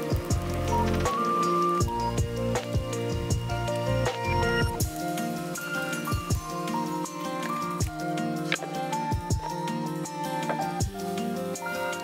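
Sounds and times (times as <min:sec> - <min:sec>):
background music with beat: 0:00.0 - 0:12.0.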